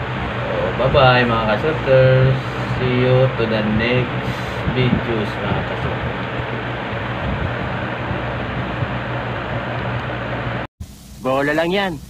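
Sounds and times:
low mechanical hum: 0.0 - 12.0
even hiss: 10.8 - 12.0.

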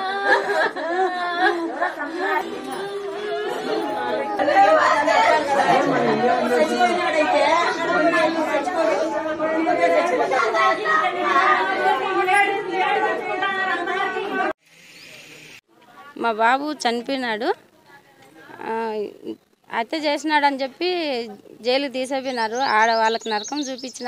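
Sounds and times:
women crying and wailing: 0.0 - 14.5.

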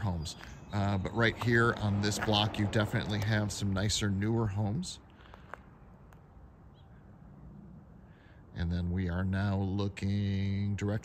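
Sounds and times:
faint bird chirp: 5.7 - 8.4.

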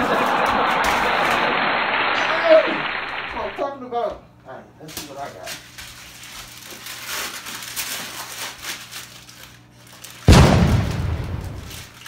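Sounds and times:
wrapping paper rustling and tearing: 4.8 - 10.3, 11.3 - 12.0
sudden loud boom: 10.3 - 11.8.

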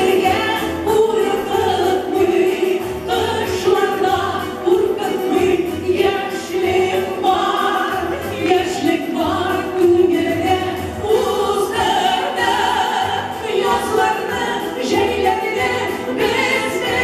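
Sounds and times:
two women singing a duet: 0.0 - 17.0.

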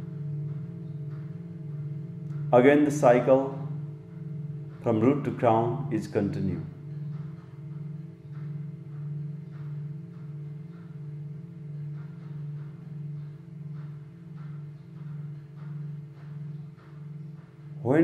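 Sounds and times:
singing bowls ringing: 0.0 - 18.0.

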